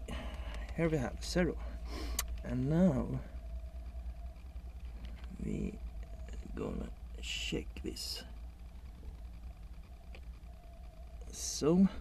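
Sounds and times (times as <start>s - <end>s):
low steady rumble: 0.0s - 12.0s
small click: 2.1s - 2.4s.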